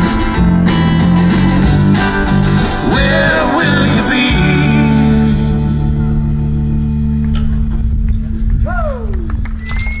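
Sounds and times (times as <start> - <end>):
ringing guitar tones: 0.0 - 8.5
held low bass note: 0.0 - 9.8.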